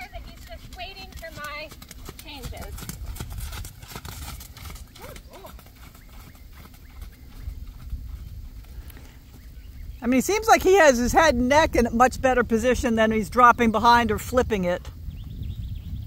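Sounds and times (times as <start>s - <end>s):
horse hoofbeats on sand: 0.0s - 12.2s.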